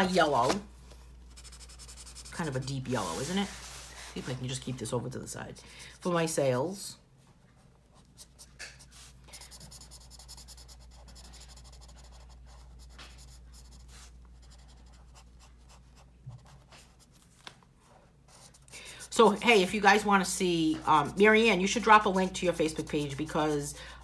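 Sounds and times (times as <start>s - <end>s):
felt-tip marker drawing on paper: 1.3s - 3.2s, 8.2s - 16.5s.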